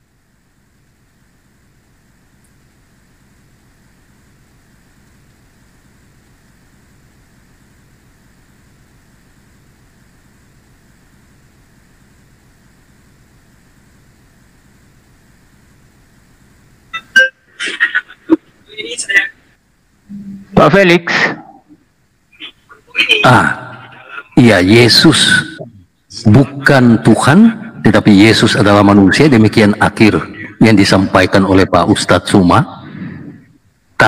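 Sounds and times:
microphone hum and hiss: 0:00.0 - 0:34.0
loud bursts of person's voice: 0:22.4 - 0:33.2.

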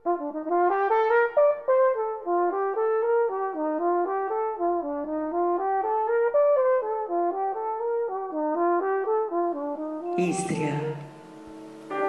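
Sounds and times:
solo brass melody: 0:00.0 - 0:12.0.

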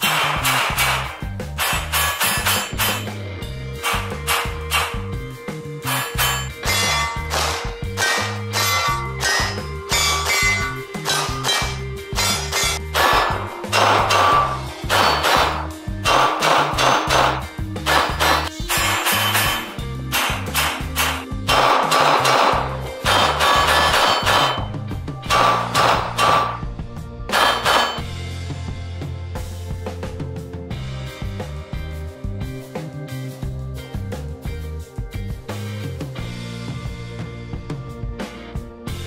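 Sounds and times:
handgun shots: 0:00.0 - 0:03.1, 0:03.8 - 0:05.0, 0:05.9 - 0:10.4, 0:11.0 - 0:24.7, 0:25.3 - 0:26.6, 0:27.3 - 0:28.0
background music with bass: 0:00.0 - 0:39.0.

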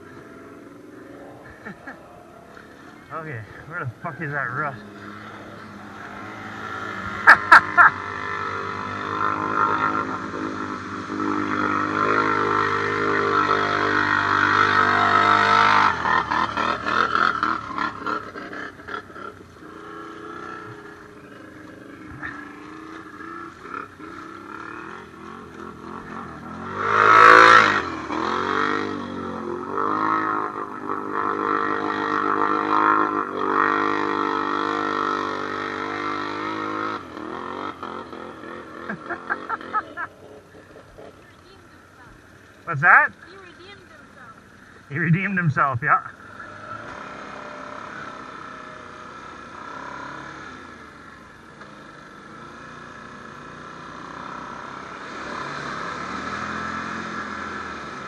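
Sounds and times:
atv engines revving through mud: 0:00.0 - 0:58.0.

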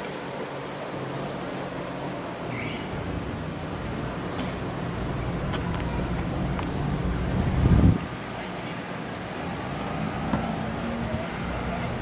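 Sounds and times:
outdoor crowd ambience: 0:00.0 - 0:12.0.

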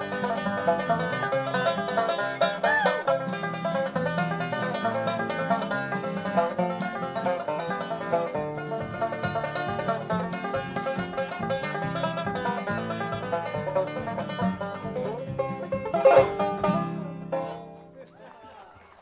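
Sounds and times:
acoustic guitar backing: 0:00.0 - 0:18.1
banjo picking a tune: 0:00.0 - 0:18.3.

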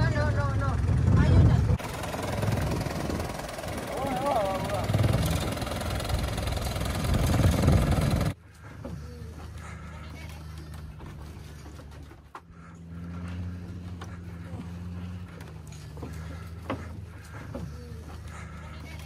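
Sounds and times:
engine rumble: 0:00.0 - 0:19.0
low hum: 0:00.1 - 0:19.0
people's voices: 0:03.7 - 0:05.0.

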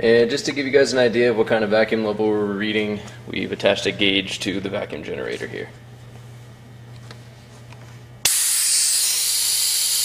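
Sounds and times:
compressed air hissing: 0:08.2 - 0:10.0.

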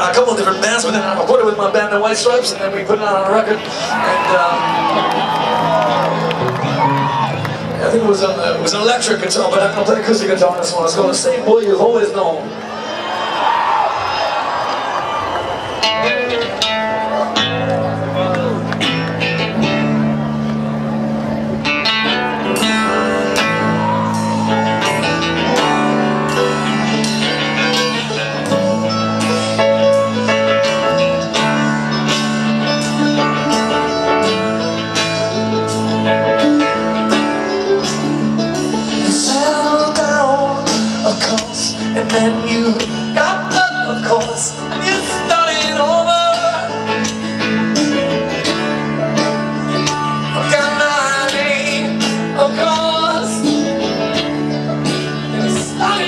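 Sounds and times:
strummed guitar chords: 0:00.0 - 0:12.6, 0:15.6 - 0:56.0
live band playing: 0:00.0 - 0:56.0
mandolin: 0:15.8 - 0:56.0
low bass notes: 0:15.9 - 0:56.0
man singing lead vocal: 0:38.8 - 0:47.4, 0:49.6 - 0:54.2, 0:54.8 - 0:56.0.

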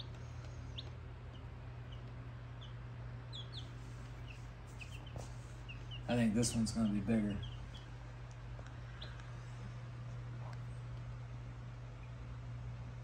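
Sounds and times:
chicks peeping: 0:00.0 - 0:09.8
steady low hum: 0:00.0 - 0:13.0.

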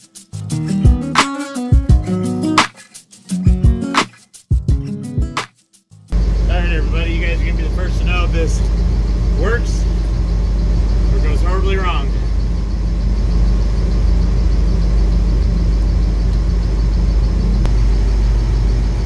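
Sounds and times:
engine idling: 0:06.1 - 0:19.0.

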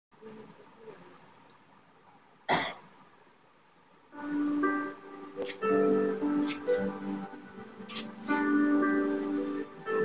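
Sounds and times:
faint room hiss: 0:00.1 - 0:10.0
person coughing: 0:02.5 - 0:02.8.

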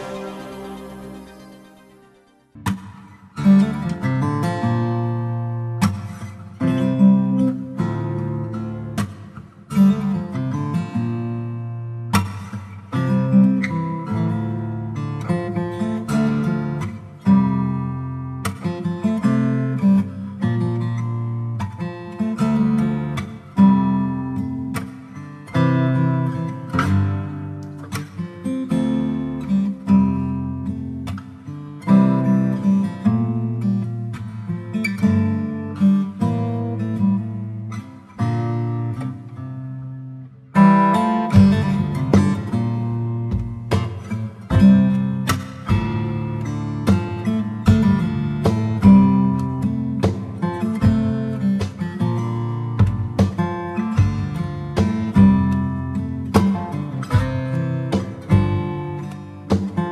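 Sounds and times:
acoustic guitar music: 0:00.0 - 0:59.9.

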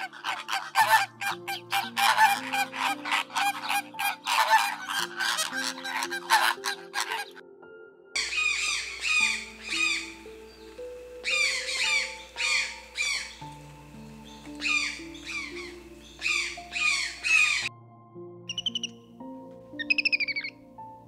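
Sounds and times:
hornbill harsh squawks: 0:00.0 - 0:07.4, 0:08.2 - 0:10.3, 0:11.2 - 0:13.5, 0:14.5 - 0:17.7, 0:19.8 - 0:20.5
soft background music: 0:00.0 - 0:21.0.

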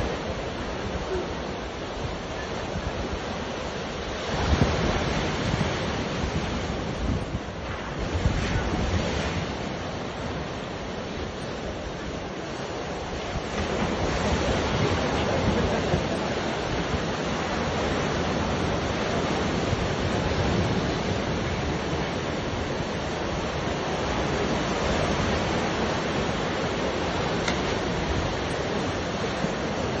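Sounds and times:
surf breaking on shore: 0:00.0 - 0:30.0
wind rumbling on microphone: 0:00.0 - 0:30.0.

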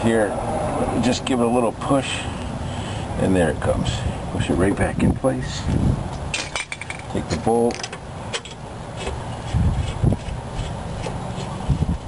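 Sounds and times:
metallic clicks and scraping: 0:06.2 - 0:11.6.

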